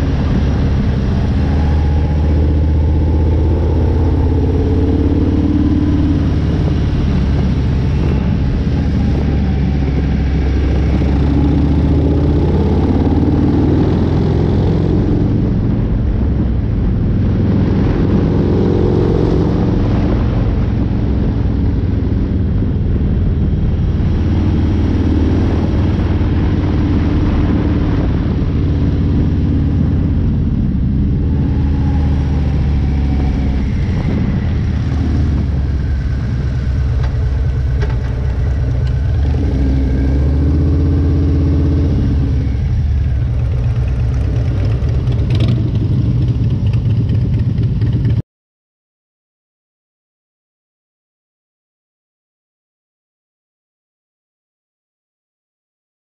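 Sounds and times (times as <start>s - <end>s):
motorcycle engine revving: 0.0s - 15.8s, 16.9s - 48.2s.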